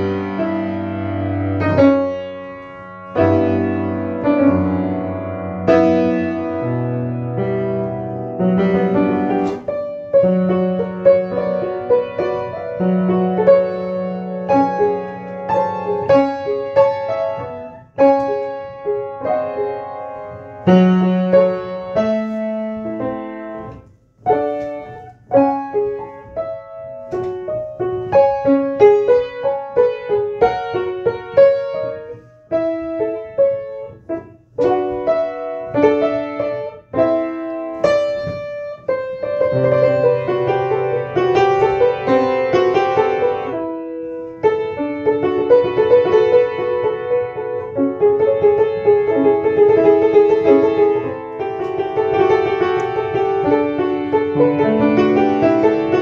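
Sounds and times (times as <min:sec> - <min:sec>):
solo piano improvisation: 0:00.0 - 0:56.0.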